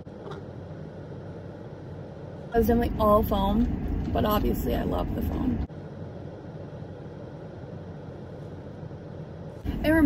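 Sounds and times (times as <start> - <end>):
car cabin rumble and hiss: 0.0 - 10.0.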